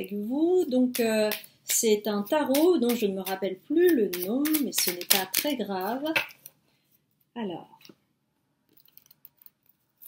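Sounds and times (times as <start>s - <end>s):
cards clicking and rustling: 2.6s - 6.5s.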